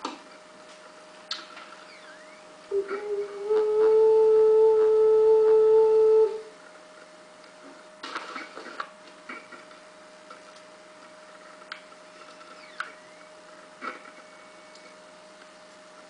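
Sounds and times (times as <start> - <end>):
ocarina long steady note: 2.7 - 6.6.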